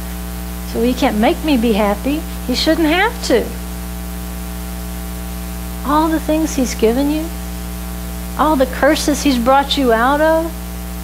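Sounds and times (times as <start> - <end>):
electrical mains hum: 0.0 - 11.0
recording hiss: 0.0 - 11.0
person speaking: 0.7 - 3.6, 5.8 - 7.4, 8.4 - 10.6.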